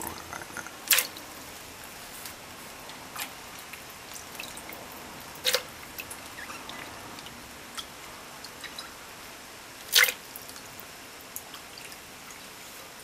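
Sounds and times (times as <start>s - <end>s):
small drips and clicks: 2.1s - 9.0s, 9.8s - 12.8s.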